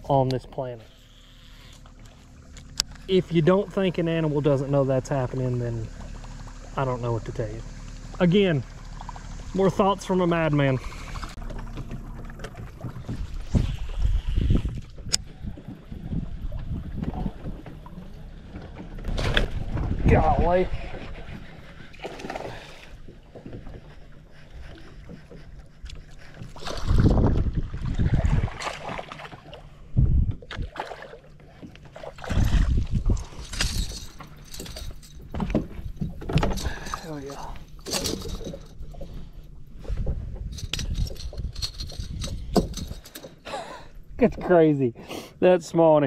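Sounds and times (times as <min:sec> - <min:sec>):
fishing tackle clicks and knocks: 0:33.2 - 0:39.2, 0:40.4 - 0:43.4.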